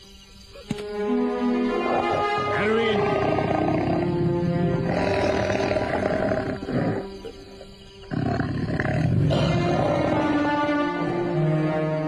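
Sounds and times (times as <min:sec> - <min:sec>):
dramatic background music: 0:00.7 - 0:12.0
tiger roaring: 0:01.8 - 0:07.4, 0:08.1 - 0:11.4.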